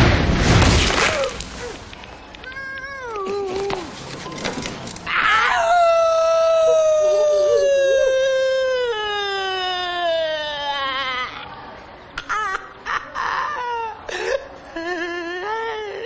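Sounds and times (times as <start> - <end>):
high-pitched long cry: 5.1 - 11.5.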